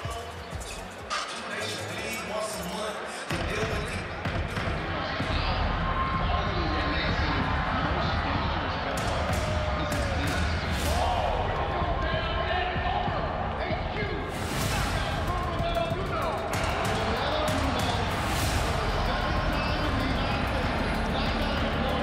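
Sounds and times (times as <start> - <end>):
large crowd noise: 0.0 - 22.0
bass-heavy beat over speakers: 3.3 - 22.0.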